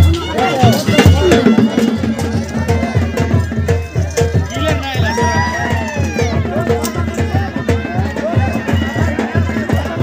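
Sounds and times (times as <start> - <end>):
steady low drumbeats: 0.0 - 10.0.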